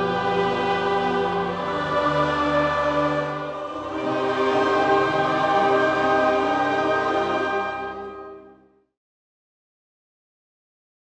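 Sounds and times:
choir singing a hymn: 0.0 - 8.5.

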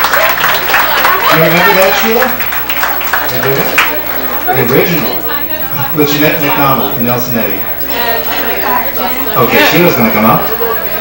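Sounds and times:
indistinct talking: 0.0 - 11.0.

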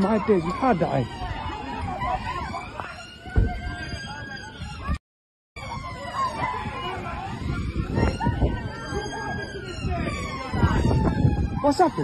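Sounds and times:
crowd's raised voices: 0.0 - 5.0, 5.6 - 12.0
emergency vehicle siren wailing: 0.0 - 5.0, 5.6 - 12.0
street noise: 0.0 - 5.0, 5.6 - 12.0.

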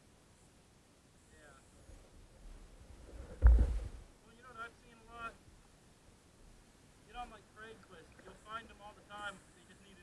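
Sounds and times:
soft background hiss: 0.0 - 10.0.

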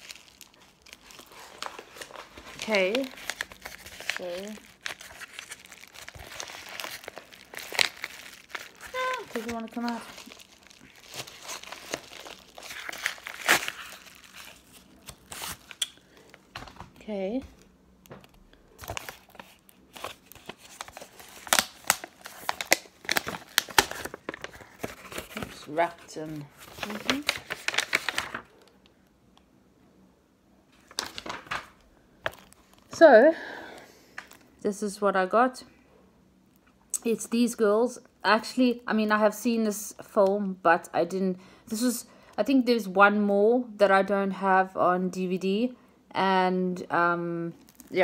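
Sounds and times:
padded envelope crinkling: 0.0 - 17.0, 18.2 - 28.8, 30.8 - 33.1.

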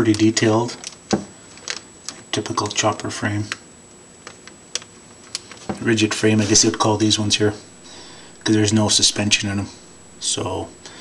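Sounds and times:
plastic clicks and crinkles: 0.1 - 2.8
man talking: 5.8 - 11.0.

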